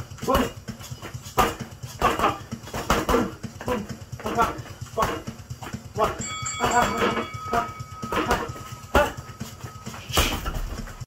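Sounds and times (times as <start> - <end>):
gloved punches on punching bags: 0.0 - 11.0
steady high tone: 6.0 - 10.8.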